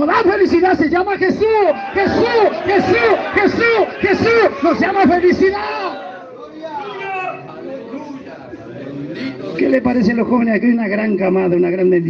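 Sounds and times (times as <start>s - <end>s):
indistinct chatter of voices: 1.1s - 10.2s.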